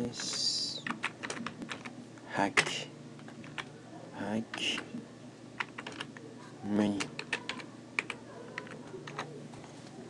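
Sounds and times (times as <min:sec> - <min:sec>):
computer keyboard typing: 0:00.2 - 0:01.9, 0:03.3 - 0:03.7, 0:05.6 - 0:06.2, 0:06.9 - 0:09.4.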